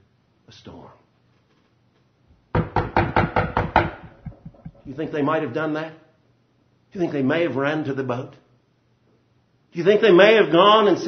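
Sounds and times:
rapid loud knocking: 2.6s - 4.9s.

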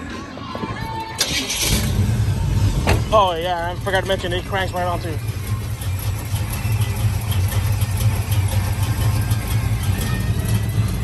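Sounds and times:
starter motor cranking: 1.2s - 2.0s
car engine running: 1.3s - 11.0s.

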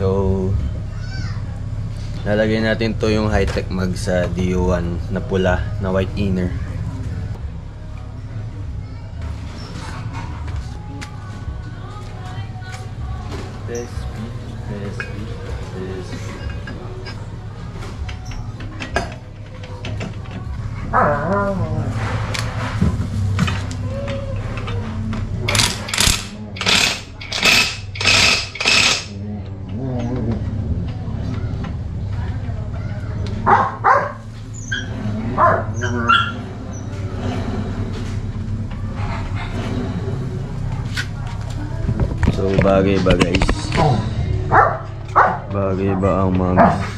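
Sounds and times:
steady low hum: 0.0s - 46.9s
impact driver bursts: 25.5s - 29.1s.

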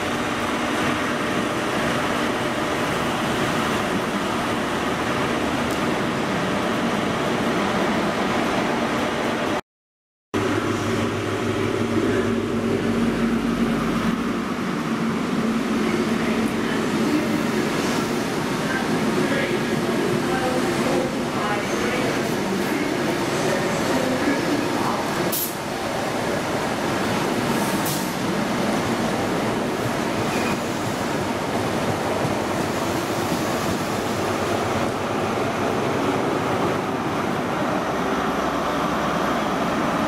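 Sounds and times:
train coaches rumbling on track: 0.0s - 9.6s, 10.4s - 40.0s.

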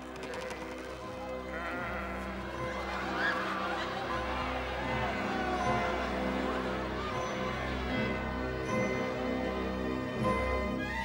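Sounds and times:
sheep bleating: 0.2s - 2.4s
background music with held chords: 1.0s - 11.0s.

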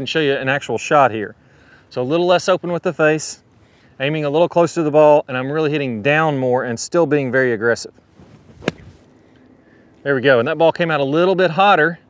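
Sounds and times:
golf club thumping into sand: 8.2s - 9.1s.

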